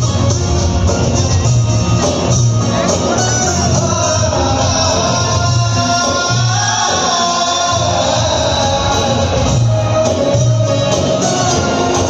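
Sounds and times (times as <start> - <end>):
live band with singer: 0.0 - 12.0.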